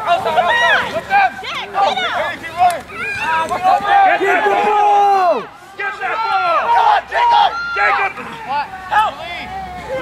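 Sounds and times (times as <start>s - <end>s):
voices shouting over each other: 0.0s - 10.0s.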